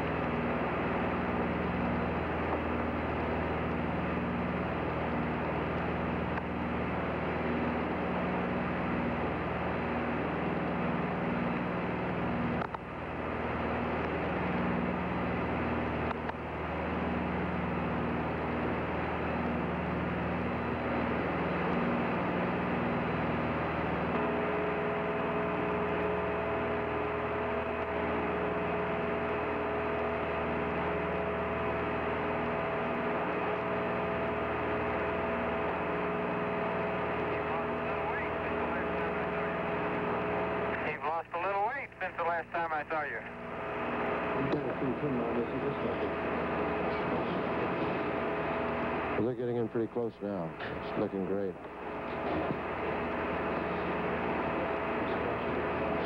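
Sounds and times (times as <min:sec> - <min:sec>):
radio link hiss and hum: 0:00.0 - 0:56.0.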